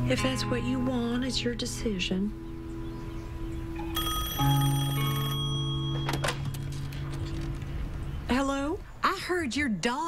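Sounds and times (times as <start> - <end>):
background music: 0.0 - 8.8
telephone bell ringing: 3.8 - 6.5.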